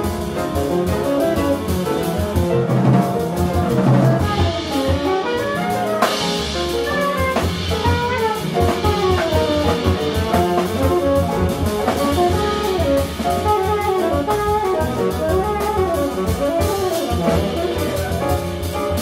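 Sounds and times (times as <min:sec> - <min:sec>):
drum and cymbal groove: 0:00.0 - 0:19.0
piano: 0:00.0 - 0:19.0
walking double bass: 0:00.0 - 0:19.0
tenor saxophone: 0:06.9 - 0:18.7.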